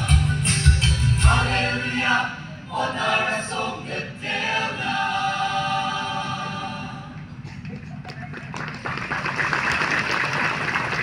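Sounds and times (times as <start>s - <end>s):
audience applauding: 7.7s - 11.0s.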